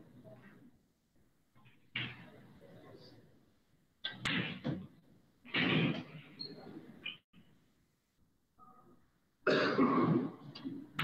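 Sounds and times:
person coughing: 0:09.4 - 0:10.5.

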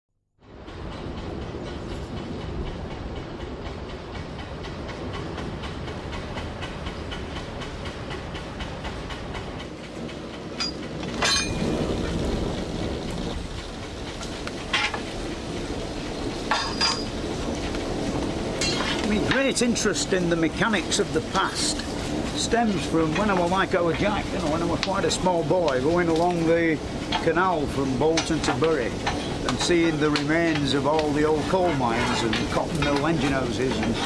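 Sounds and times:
steam boiler rumble and hiss: 0:00.4 - 0:34.0.

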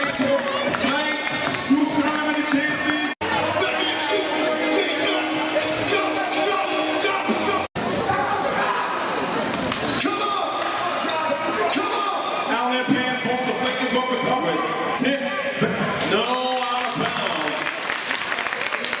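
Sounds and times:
shouting voices echoing: 0:00.0 - 0:09.0.

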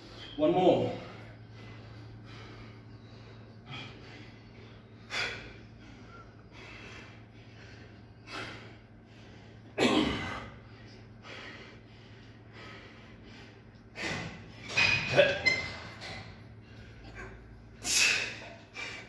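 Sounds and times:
man breathing hard: 0:01.1 - 0:14.6, 0:16.4 - 0:19.0.

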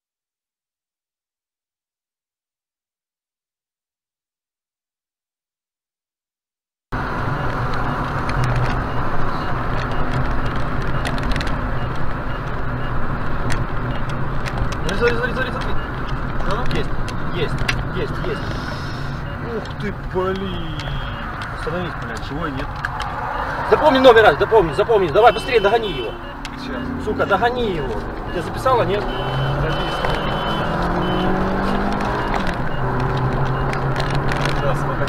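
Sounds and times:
car engine and tyre noise: 0:06.9 - 0:35.0.

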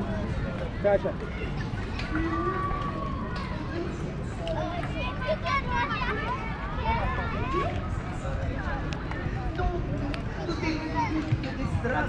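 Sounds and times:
distant indistinct voices: 0:00.0 - 0:12.0.

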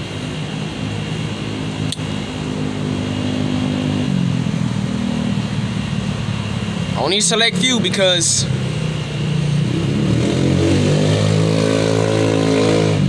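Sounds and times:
vehicle engine running: 0:00.0 - 0:13.0
sharp click: 0:01.8 - 0:02.2.

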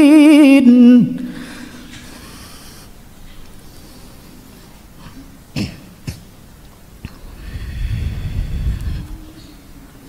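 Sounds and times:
man coughing: 0:05.5 - 0:06.3
low rumbling on microphone: 0:07.1 - 0:09.8.

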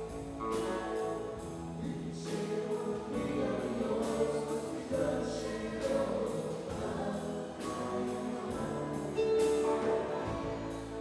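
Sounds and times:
live band playing with singing: 0:00.0 - 0:11.0.

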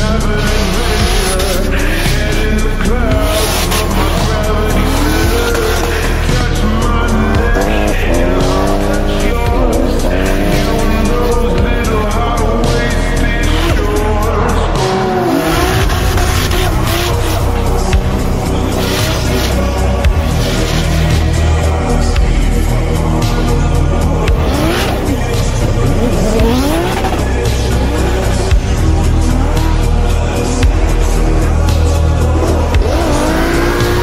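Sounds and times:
tyres squealing: 0:00.0 - 0:22.0
background music: 0:00.0 - 0:34.0
car engines revving: 0:00.0 - 0:34.0.

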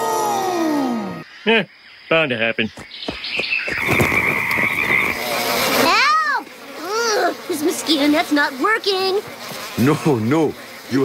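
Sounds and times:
frogs croaking: 0:00.0 - 0:11.0.

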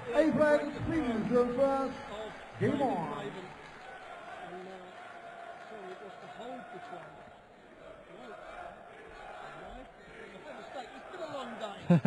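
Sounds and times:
man's voice: 0:00.0 - 0:03.5.

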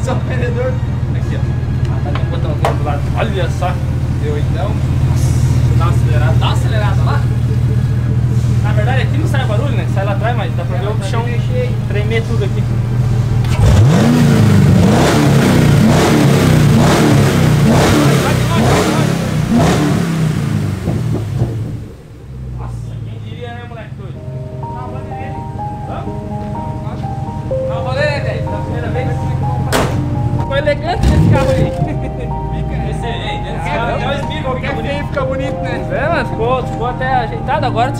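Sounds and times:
car engine idling low: 0:00.0 - 0:13.7, 0:14.3 - 0:37.9
music playing: 0:00.0 - 0:20.8, 0:21.7 - 0:37.9
car engine revving: 0:00.0 - 0:37.9.

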